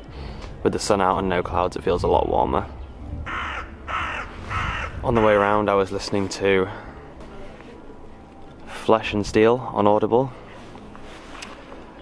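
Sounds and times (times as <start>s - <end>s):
crow cawing: 3.3s - 5.6s.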